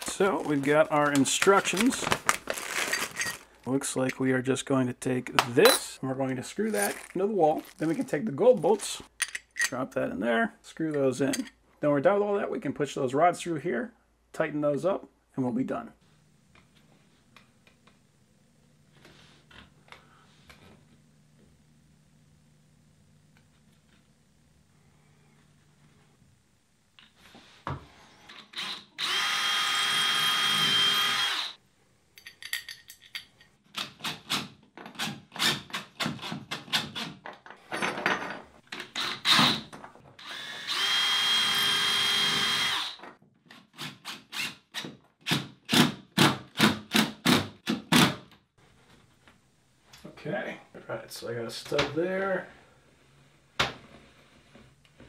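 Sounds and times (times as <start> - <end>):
electric drill boring into wall: 28.3 - 31.6, 38.9 - 43.1.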